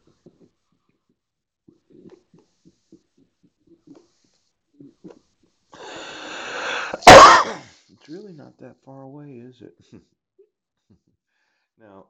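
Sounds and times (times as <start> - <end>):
man sneezing: 5.8 - 7.7.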